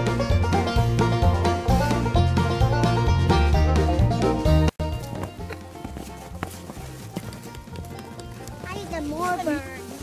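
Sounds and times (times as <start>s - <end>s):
campfire crackling: 4.8s - 10.0s.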